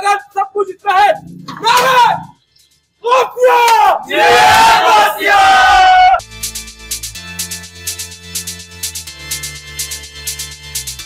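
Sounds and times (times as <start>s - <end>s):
men shouting a chant: 0.9s - 2.3s, 3.0s - 6.2s.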